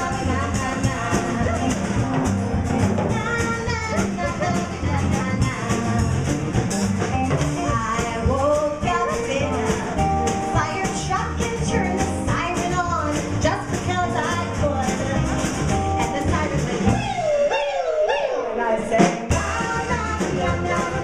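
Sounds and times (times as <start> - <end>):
woman singing: 0.0 - 2.1, 3.1 - 6.3, 7.5 - 17.3, 18.4 - 21.0
drum kit beat: 0.0 - 21.0.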